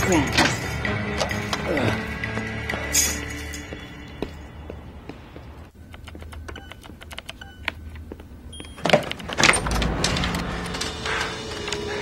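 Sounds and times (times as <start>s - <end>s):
keyboard typing: 5.8s - 8.0s.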